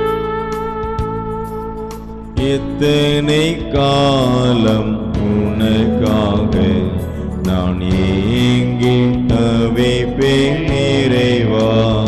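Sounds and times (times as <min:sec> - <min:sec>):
sustained instrumental accompaniment: 0:00.0 - 0:12.0
person singing a hymn: 0:02.4 - 0:12.0.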